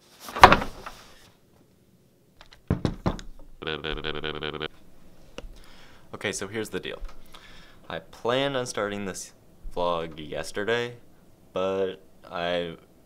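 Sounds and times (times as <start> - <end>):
knocks: 2.6 - 3.5
object thumping down: 2.6 - 3.5
steady buzzing tone: 3.5 - 6.4.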